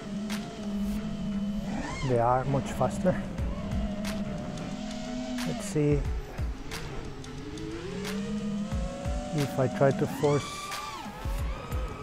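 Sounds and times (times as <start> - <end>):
drone motors whining: 0.0 - 12.0.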